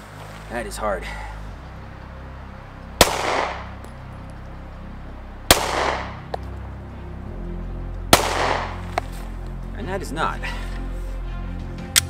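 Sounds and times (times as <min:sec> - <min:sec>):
pistol shots with echo: 0:03.0 - 0:03.8, 0:05.5 - 0:06.3, 0:08.1 - 0:08.9.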